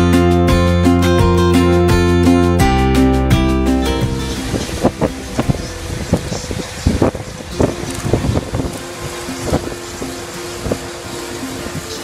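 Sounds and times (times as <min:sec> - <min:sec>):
guitar music: 0:00.0 - 0:12.0
tram rumbling and clattering: 0:04.0 - 0:12.0.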